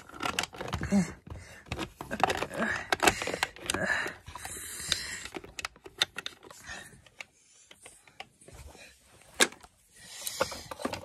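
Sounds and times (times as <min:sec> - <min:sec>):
plastic toys clattering: 0:00.0 - 0:08.4, 0:09.2 - 0:11.0.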